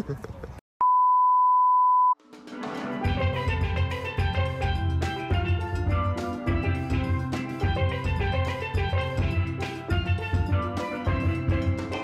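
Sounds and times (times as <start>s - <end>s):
high-pitched test beep: 0.8s - 2.2s
music with pitched percussion and drums: 2.2s - 12.0s.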